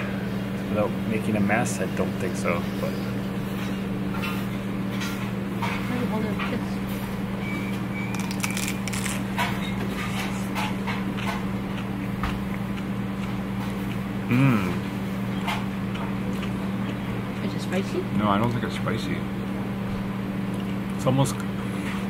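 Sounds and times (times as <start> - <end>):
low hum of dining room: 0.0 - 22.0
biting into crisp tortilla chip: 8.1 - 9.3
scattered clicks and crunches: 8.1 - 9.5.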